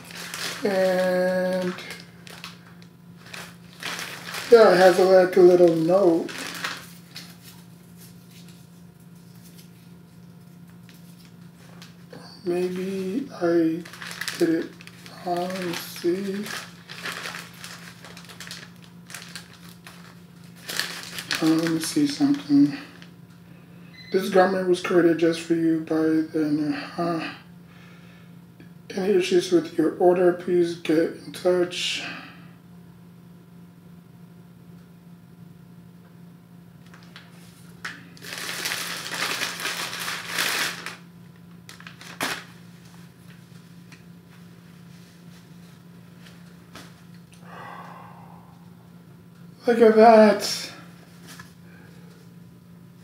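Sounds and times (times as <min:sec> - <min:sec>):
plastic bag crinkling: 0:00.0 - 0:23.1, 0:36.8 - 0:43.4
low hum: 0:43.2 - 0:49.6.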